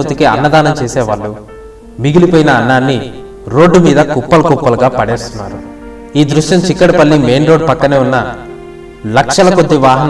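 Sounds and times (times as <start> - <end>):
man narrating: 0.0 - 10.0.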